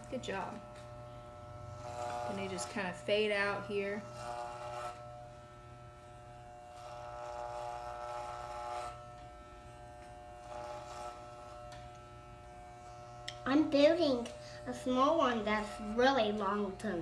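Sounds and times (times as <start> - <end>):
electric hair clippers buzzing: 0.0 - 17.0.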